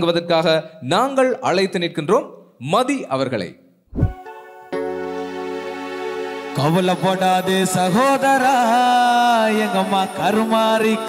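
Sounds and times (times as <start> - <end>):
man speaking into a microphone: 0.0 - 3.6.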